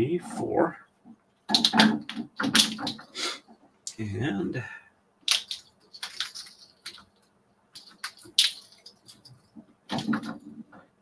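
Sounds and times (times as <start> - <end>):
braiding bobbins clacking: 1.0 - 3.6, 5.3 - 11.0.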